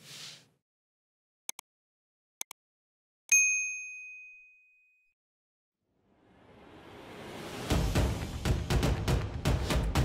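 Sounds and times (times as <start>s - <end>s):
notification bell ding: 3.3s - 5.1s.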